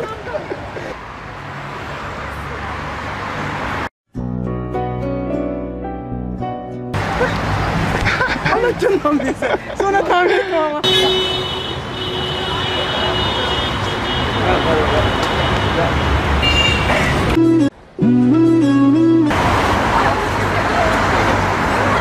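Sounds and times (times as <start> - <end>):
passers-by: 0.0 - 3.9, 7.0 - 22.0
street traffic: 0.0 - 3.9, 6.9 - 22.0.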